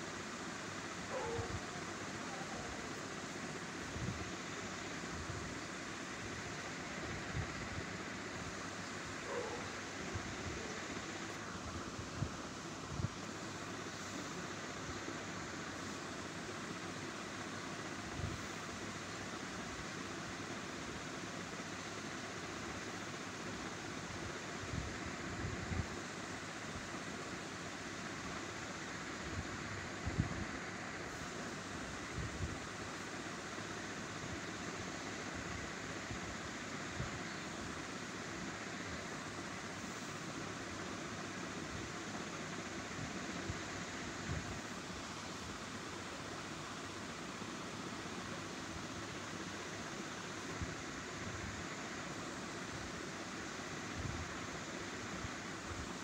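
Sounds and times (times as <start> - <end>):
steady background hiss: 0.0 - 56.0.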